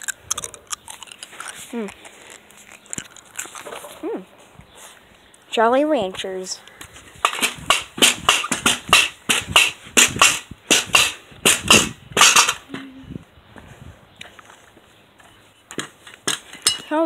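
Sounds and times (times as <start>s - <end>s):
sharp knocks: 7.2s - 12.6s.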